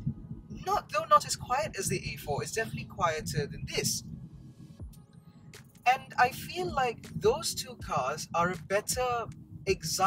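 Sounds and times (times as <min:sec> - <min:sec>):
man's voice: 0:00.6 - 0:04.0, 0:05.9 - 0:10.0.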